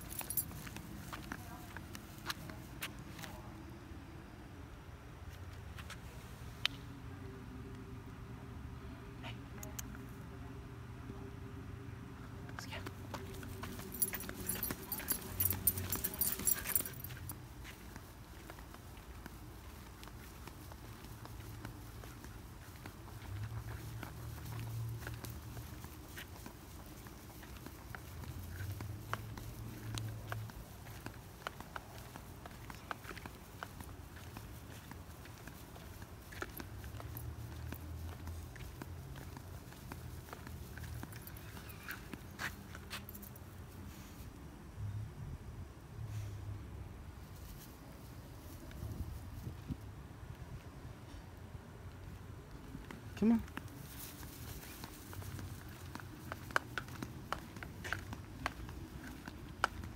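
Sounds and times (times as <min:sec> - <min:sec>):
faint footsteps on grass: 0:00.0 - 0:03.5, 0:12.7 - 0:44.4, 0:47.2 - 0:59.9.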